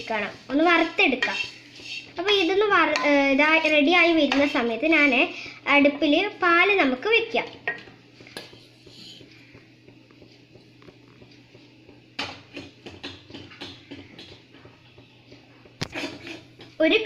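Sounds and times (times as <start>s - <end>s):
plastic spoon scraping a pan: 0.5s - 2.2s, 15.8s - 16.7s.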